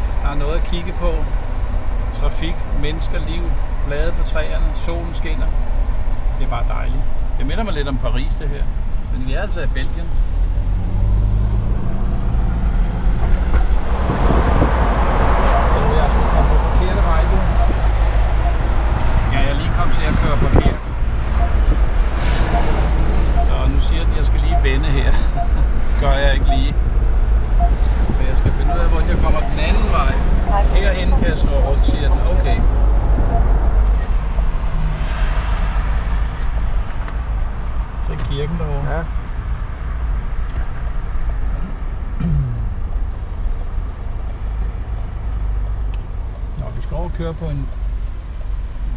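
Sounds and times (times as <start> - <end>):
car engine drone: 0.0 - 48.9
tyre and road noise: 0.0 - 48.9.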